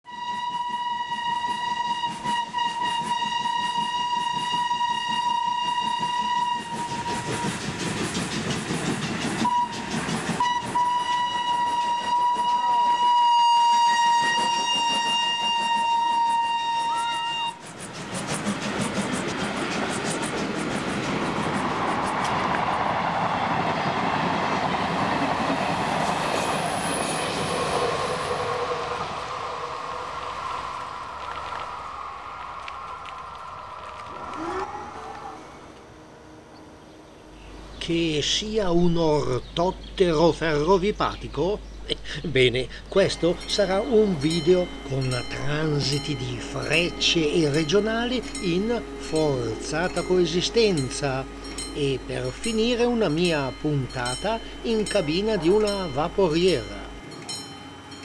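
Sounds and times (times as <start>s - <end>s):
train rushing by: 0.1s - 58.0s
train wheels clattering on rail: 1.4s - 13.0s, 13.7s - 28.5s
long steady high tone: 42.2s - 58.0s.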